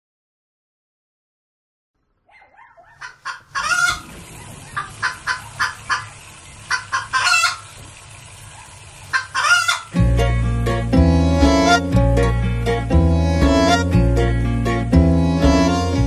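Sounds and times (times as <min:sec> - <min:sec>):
chicken drawn-out calls: 0:02.1 - 0:10.0, 0:11.1 - 0:11.9, 0:13.2 - 0:13.9
faint chick peeps: 0:02.2 - 0:06.1
chickens clucking: 0:02.3 - 0:10.0, 0:11.0 - 0:12.0.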